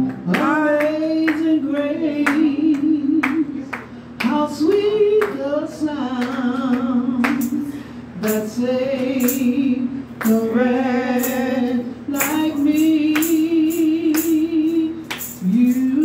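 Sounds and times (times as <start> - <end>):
woman singing gospel song: 0.0 - 16.0.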